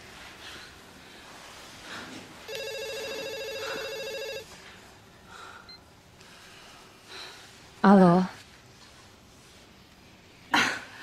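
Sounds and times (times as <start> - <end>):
telephone ringing: 2.5 - 4.6.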